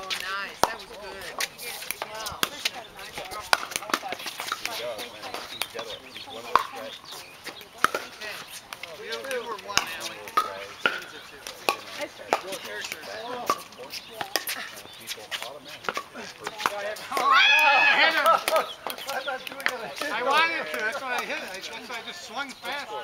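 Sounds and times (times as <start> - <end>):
paddles hitting plastic ball: 0.0 - 5.8, 6.5 - 6.8, 15.3 - 21.6
faint voices: 0.0 - 23.0.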